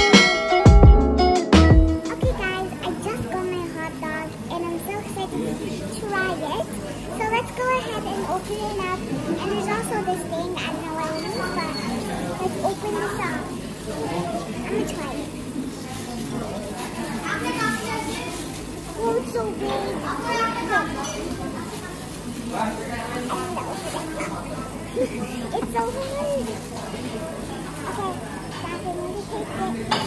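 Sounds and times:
child's voice: 1.6 - 13.6, 14.6 - 15.4, 17.2 - 21.4, 23.3 - 24.3, 25.0 - 26.6, 27.8 - 30.0
girl talking: 1.6 - 15.5, 17.0 - 21.5, 23.3 - 24.3, 25.0 - 26.7, 27.8 - 30.0
plastic bag rustling: 2.2 - 5.3, 5.9 - 29.2.

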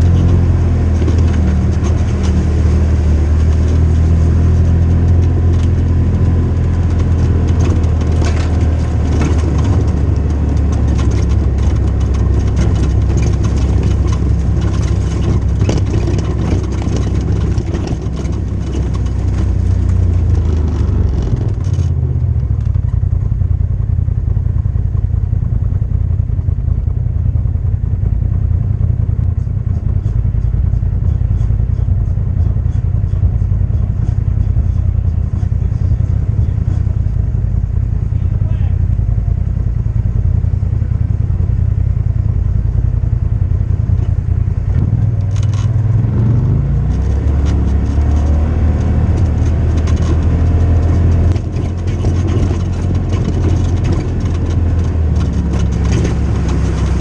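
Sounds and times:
light clatter over rough ground: 0.0 - 57.0
off-road vehicle engine running: 0.0 - 57.0.

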